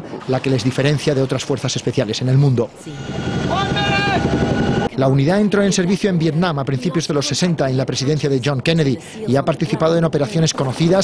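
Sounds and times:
helicopter rotor and engine: 2.8s - 5.0s.

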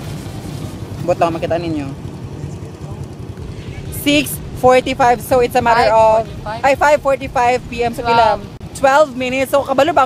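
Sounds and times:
motorcycle engine idling: 0.1s - 10.0s.

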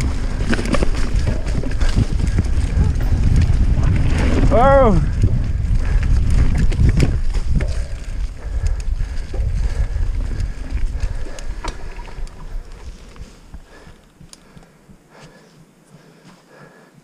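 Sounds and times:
bike rattles and knocks: 0.0s - 14.2s
bike tyres rumbling on dirt: 0.0s - 14.3s
wind buffeting microphone: 0.0s - 15.0s.

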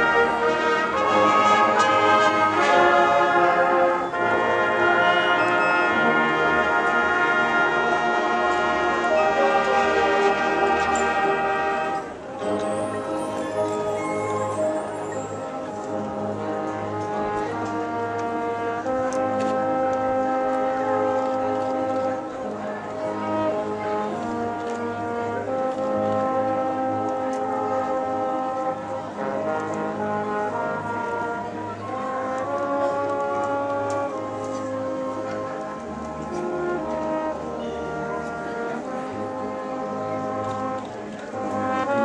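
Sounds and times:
brass section holding chords: 0.0s - 40.8s, 41.4s - 42.0s.

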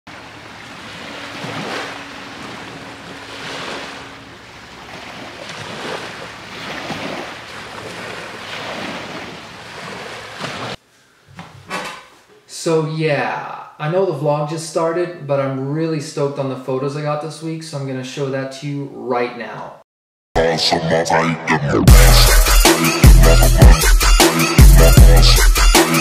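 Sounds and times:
ocean waves washing in: 0.1s - 10.8s.

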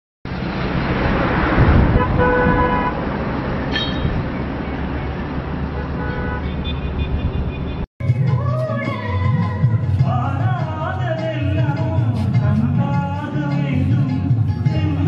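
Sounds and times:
road traffic noise: 0.3s - 15.0s
vehicle horn honking: 1.9s - 3.0s, 3.7s - 4.2s, 5.7s - 7.8s.

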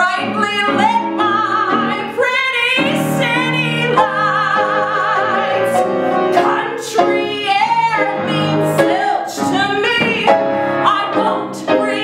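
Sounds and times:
instrumental accompaniment: 0.0s - 12.0s
woman singing: 0.0s - 12.0s.

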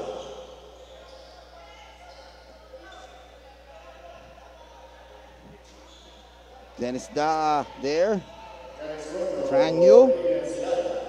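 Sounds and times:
basketball bounces echoing: 0.0s - 3.3s
faint distant voices: 0.0s - 11.0s
commentator speaking: 8.8s - 11.0s.

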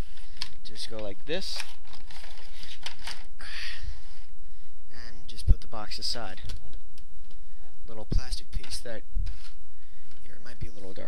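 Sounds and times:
cardboard packaging rustling: 0.0s - 3.3s.

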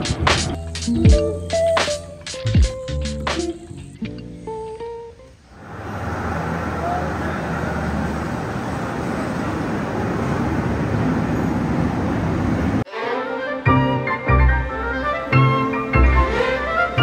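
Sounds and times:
crowd chatter: 6.4s - 13.5s.

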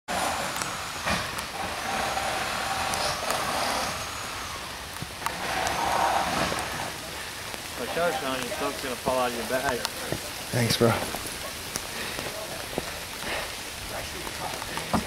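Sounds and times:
outdoor rumble: 0.1s - 7.8s.

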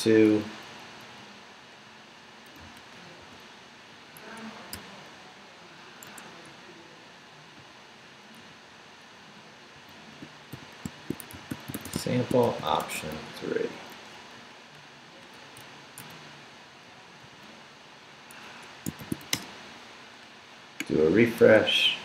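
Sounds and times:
computer keyboard keystrokes: 10.5s - 12.9s, 18.8s - 19.5s.

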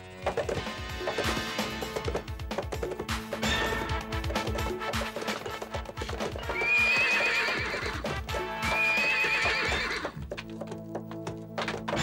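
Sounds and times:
background music: 0.0s - 12.0s
galloping hoofbeats: 0.0s - 12.0s
horse whinnies: 6.3s - 10.2s.

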